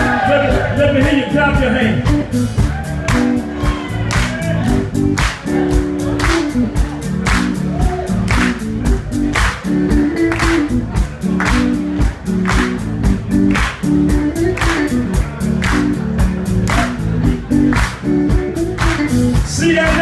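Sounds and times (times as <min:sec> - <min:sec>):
live blues band playing: 0:00.0 - 0:20.0
audience clapping along: 0:02.6 - 0:20.0.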